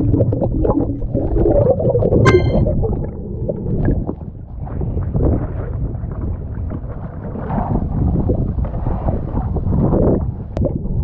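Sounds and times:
wind buffeting microphone: 4.6s - 11.0s.

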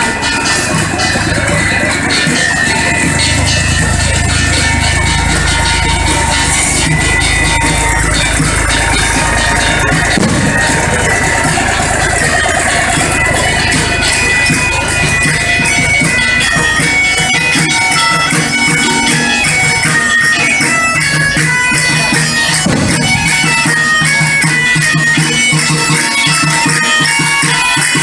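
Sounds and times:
bagpipe music: 0.0s - 28.0s
small tractor engine running: 0.0s - 28.0s.

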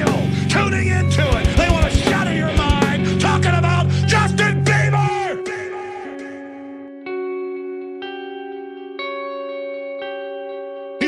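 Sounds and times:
electric guitar chords with echo: 0.0s - 11.0s.

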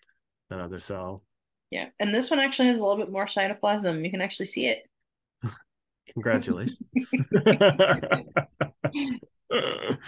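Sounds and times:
man laughing: 6.4s - 10.0s
woman laughing: 7.0s - 9.2s.

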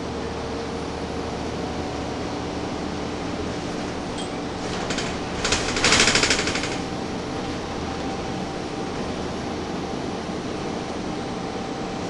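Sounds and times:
bus and fans droning: 0.0s - 12.0s
rapid rattling clatter: 3.5s - 8.2s.

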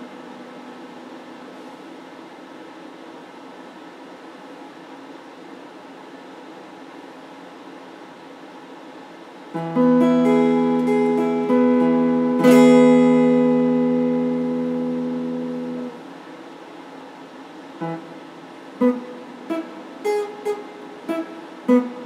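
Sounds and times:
electric guitar chord ringing: 0.0s - 1.5s, 9.6s - 16.1s, 17.8s - 22.0s
electric guitar picked notes: 0.0s - 1.6s, 9.6s - 16.1s, 17.8s - 22.0s.

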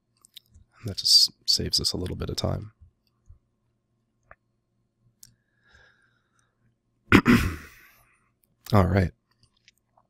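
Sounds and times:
man clearing throat: 7.1s - 7.9s.

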